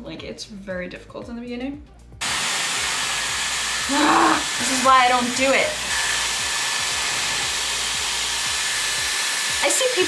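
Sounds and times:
hair styler blowing air: 2.2 - 10.0.

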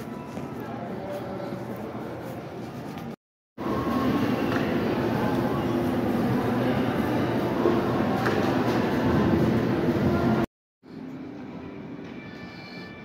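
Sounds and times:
loud rumbling background noise: 3.6 - 10.4.

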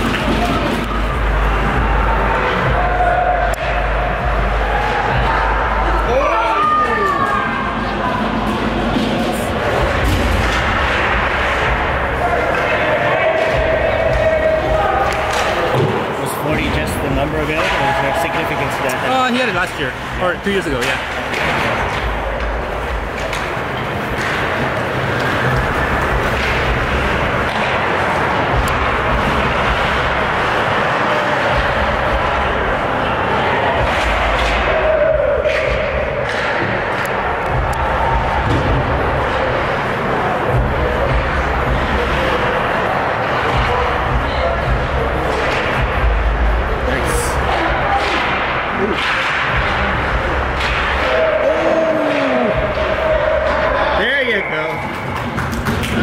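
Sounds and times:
sticks and puck clacking: 0.0 - 1.2, 6.5 - 56.0
murmur of spectators: 0.0 - 56.0.

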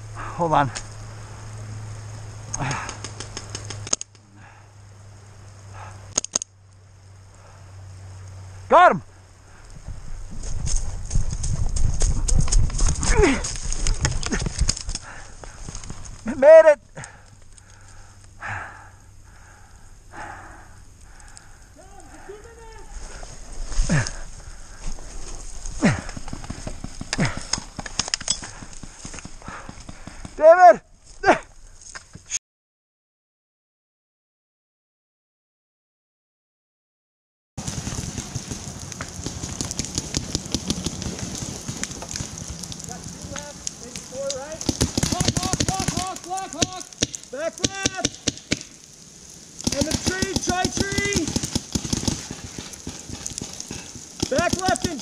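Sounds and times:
person shouting: 8.7 - 9.0, 13.1 - 13.4, 21.8 - 22.9, 30.4 - 31.5, 44.4 - 48.2
paintball markers firing: 37.8 - 42.6, 44.3 - 48.8, 49.6 - 55.0.

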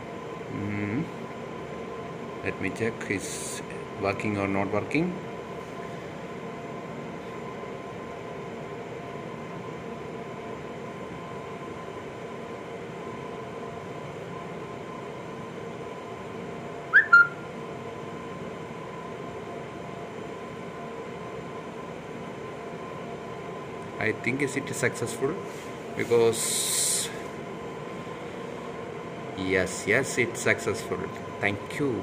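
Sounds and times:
steady room hum: 0.0 - 32.0
double chirp falling in pitch: 17.0 - 17.4.

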